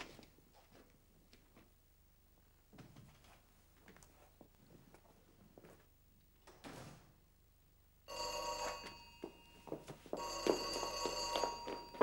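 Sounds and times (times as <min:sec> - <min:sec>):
telephone bell ringing: 0:08.1 - 0:12.0.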